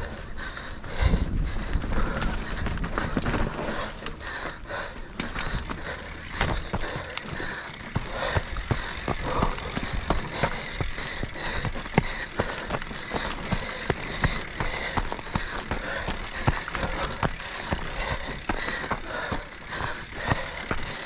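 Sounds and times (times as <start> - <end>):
bike tyres on loose gravel: 0.5 - 21.0
bike knocking and rattling: 1.0 - 21.0.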